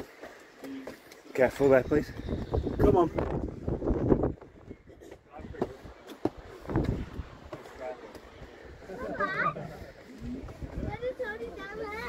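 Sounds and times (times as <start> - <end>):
footsteps on stone steps: 0.0 - 2.4, 3.3 - 8.4.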